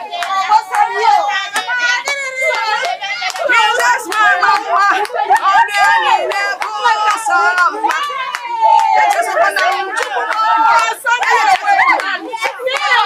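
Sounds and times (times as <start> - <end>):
women calling out excitedly: 0.0 - 13.0
hand claps: 0.1 - 13.0.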